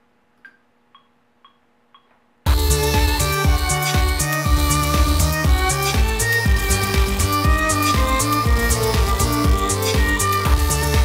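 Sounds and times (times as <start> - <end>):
metronome clicks: 0.4 - 2.2.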